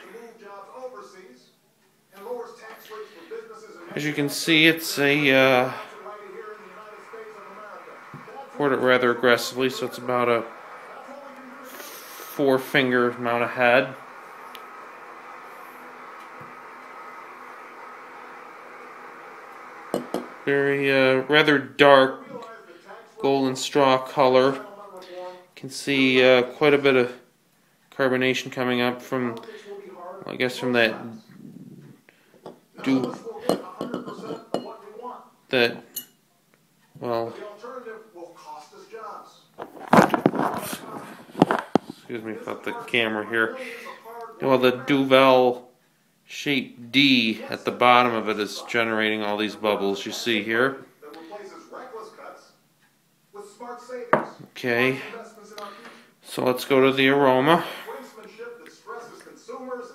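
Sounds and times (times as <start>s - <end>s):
low hiss of room noise: 0.0s - 59.9s
camera knocking on tiled tabletop: 19.9s - 20.3s
rubbing and scraping: 39.6s - 42.1s.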